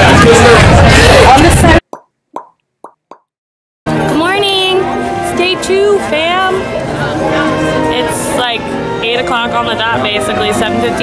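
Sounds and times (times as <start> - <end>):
cartoon plop pops: 1.8 - 3.3.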